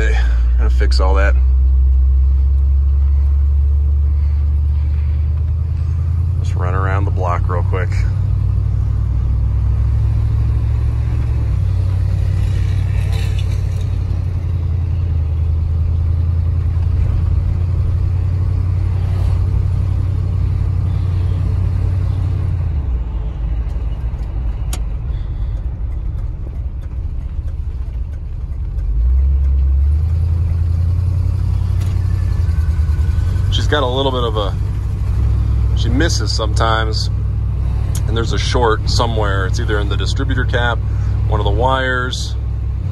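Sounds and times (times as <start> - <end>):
truck engine rumble from cab: 0.0 - 42.9.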